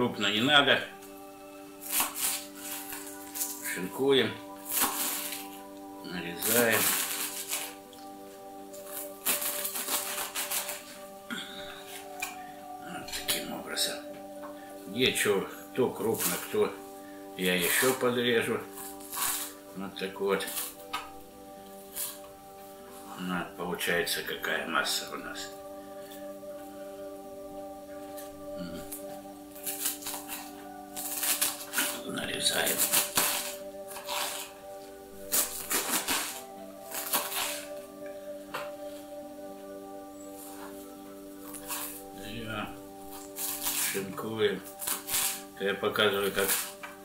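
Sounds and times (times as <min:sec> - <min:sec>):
background music: 0:00.0 - 0:47.0
knife slicing cabbage: 0:01.8 - 0:03.6, 0:04.6 - 0:05.5, 0:08.8 - 0:11.0, 0:18.7 - 0:19.6, 0:32.6 - 0:34.5, 0:35.2 - 0:37.8, 0:43.1 - 0:44.1, 0:44.7 - 0:45.5.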